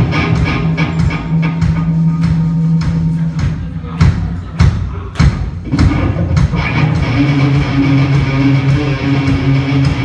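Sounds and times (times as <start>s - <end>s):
held guitar chords: 0.0s - 3.6s, 5.6s - 10.0s
live band playing loud: 0.0s - 10.0s
heavy drum hits: 2.8s - 10.0s.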